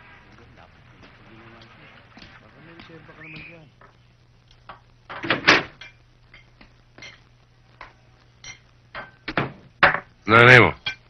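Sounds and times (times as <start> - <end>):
plates clinking on a table: 5.1 - 7.2, 7.8 - 10.1.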